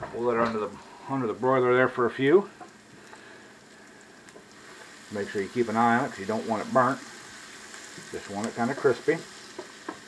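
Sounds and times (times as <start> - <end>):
onions sizzling in skillet: 0.0 - 10.0.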